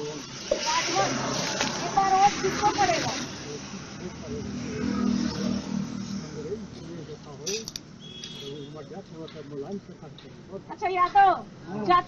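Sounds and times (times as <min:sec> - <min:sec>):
vehicle engine hum passing: 0:00.0 - 0:08.0.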